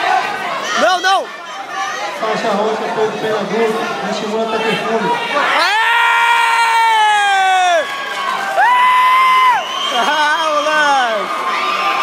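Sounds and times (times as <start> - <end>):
crowd noise: 0.0 - 12.0
spectators yelling: 4.5 - 12.0.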